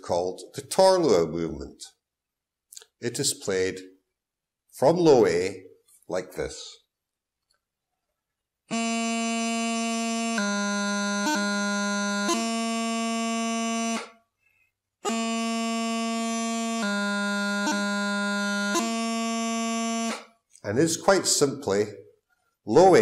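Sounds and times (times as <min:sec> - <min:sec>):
bagpipe practice chanter: 0:08.7 - 0:14.2, 0:15.0 - 0:20.4.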